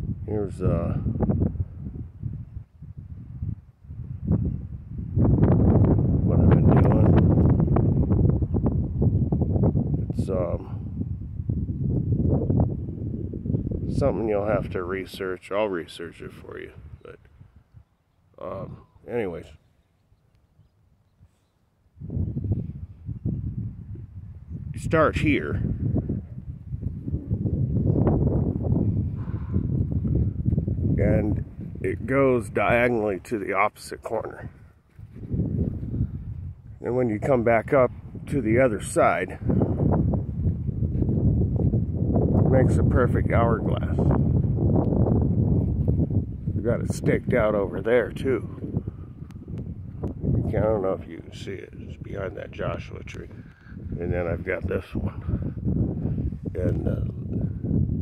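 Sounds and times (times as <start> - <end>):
wind rumbling on microphone: 0.0 - 58.0
footsteps on gravelly dirt: 34.4 - 36.0.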